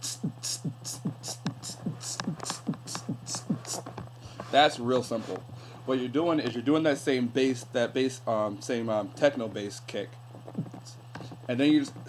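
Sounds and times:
beatboxed bass kicks: 0:00.0 - 0:04.0, 0:10.4 - 0:12.0
low hum: 0:00.0 - 0:04.0, 0:10.1 - 0:12.0
beatboxed hissing hi-hat: 0:00.0 - 0:05.2, 0:10.4 - 0:12.0.

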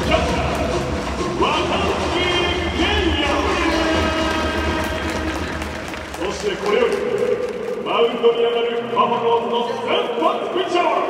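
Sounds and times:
crowd rumble: 0:00.0 - 0:10.6
announcer calling over loudspeaker: 0:00.0 - 0:11.0
music: 0:00.0 - 0:11.0.

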